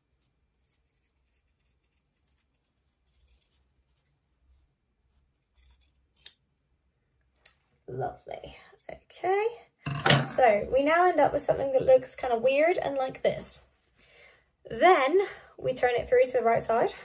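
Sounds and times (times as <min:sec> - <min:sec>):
scissors snipping fabric: 0:00.0 - 0:03.6, 0:05.4 - 0:06.4.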